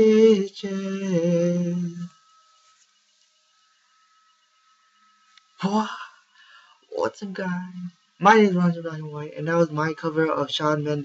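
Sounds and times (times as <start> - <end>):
faint high-pitched whine: 0.0 - 11.0
faint low hum: 0.0 - 11.0.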